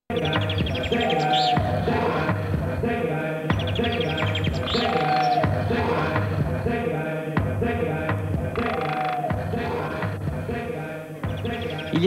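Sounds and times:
high chirping glides: 0.2s - 2.2s, 3.5s - 5.6s.

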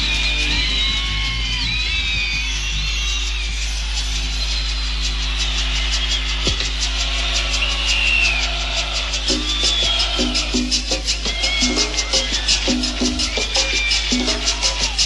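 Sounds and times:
crowd noise: 0.0s - 15.0s
quick percussion rhythm: 0.0s - 15.0s
whistles gliding up and down: 0.0s - 15.0s.

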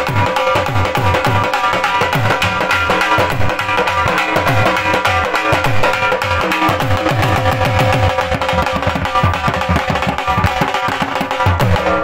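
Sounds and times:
fast dhol drum strokes: 0.0s - 12.0s
steady held melody: 0.0s - 12.0s.

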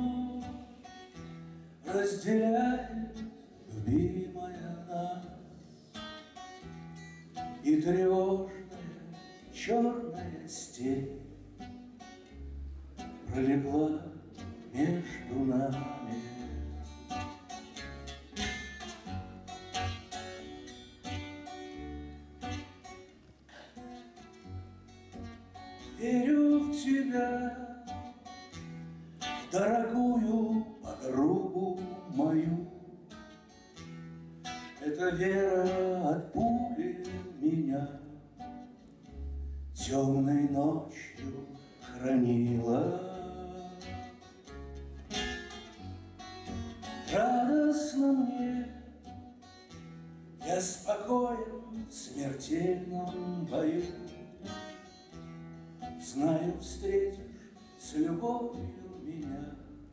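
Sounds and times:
man singing: 0.0s - 0.9s, 1.8s - 5.6s, 7.4s - 11.4s, 13.2s - 16.9s, 25.8s - 28.0s, 29.3s - 33.1s, 34.8s - 38.4s, 39.7s - 44.3s, 46.9s - 49.1s, 50.4s - 54.9s, 55.9s - 59.9s
acoustic guitar: 0.0s - 59.9s.

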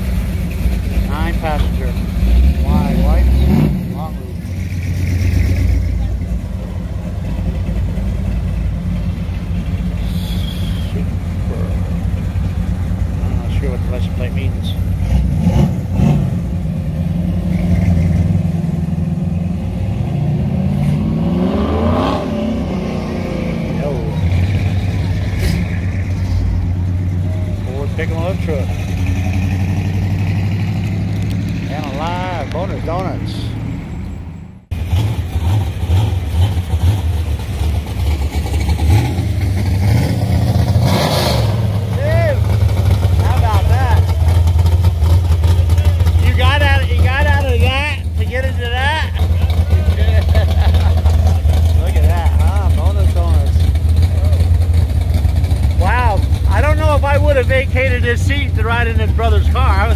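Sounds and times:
car engines running at low speed: 0.0s - 59.9s
car accelerating past: 15.0s - 46.7s.

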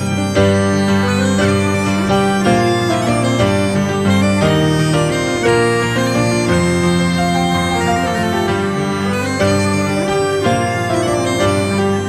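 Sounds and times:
reedy folk waltz melody: 0.0s - 12.0s.

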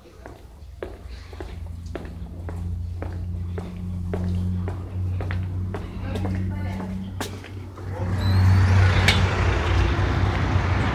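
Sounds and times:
road traffic rumble: 0.0s - 10.9s
faint high rising squeal: 7.8s - 9.7s.

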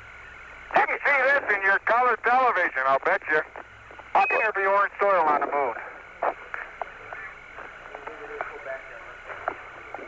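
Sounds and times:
radio hiss: 0.0s - 10.0s.

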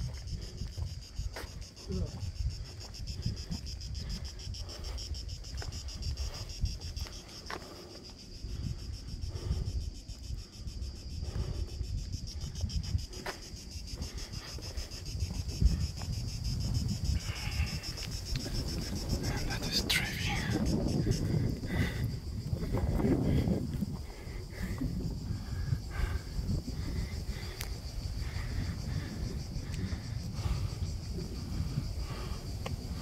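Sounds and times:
insects chorus pulsing: 0.0s - 33.0s
wind rumble on microphone: 0.0s - 33.0s.

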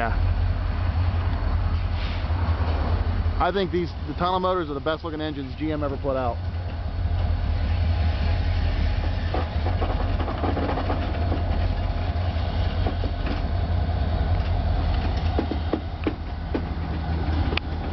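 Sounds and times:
diesel locomotive engines rumbling: 0.0s - 17.9s
wheels clicking over track: 9.0s - 13.6s, 14.2s - 17.9s.

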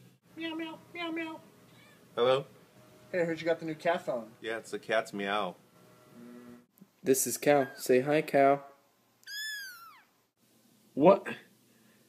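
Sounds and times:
kitten meowing: 9.2s - 10.1s.

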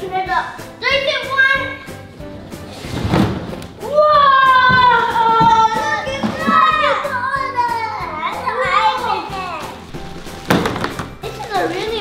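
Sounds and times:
background music: 0.0s - 12.0s
children squealing and exclaiming: 3.8s - 9.9s, 11.1s - 12.0s.

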